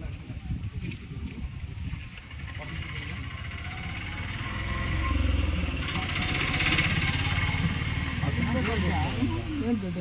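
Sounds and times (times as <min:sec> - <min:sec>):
vehicle engine running: 0:02.2 - 0:10.0.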